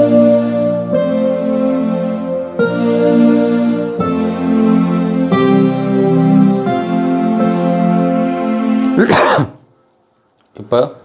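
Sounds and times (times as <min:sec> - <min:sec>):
man clearing throat: 0:09.0 - 0:09.7.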